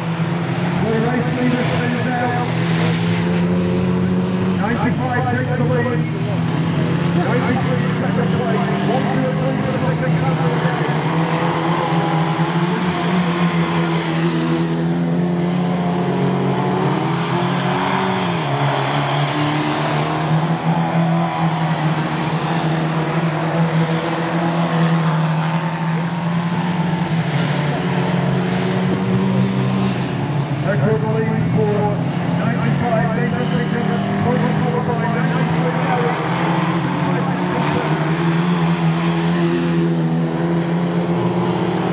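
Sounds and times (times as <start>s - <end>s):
stock cars racing: 0.0s - 41.9s.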